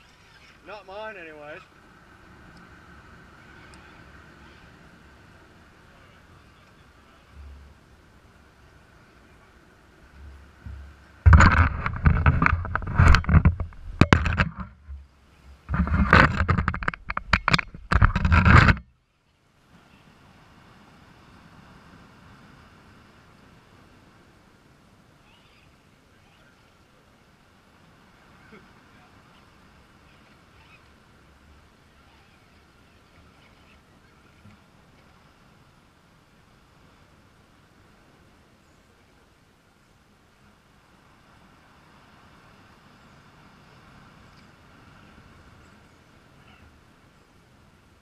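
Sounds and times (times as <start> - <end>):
camera handling knocks against rock: 10.7 - 15.0, 15.7 - 18.8.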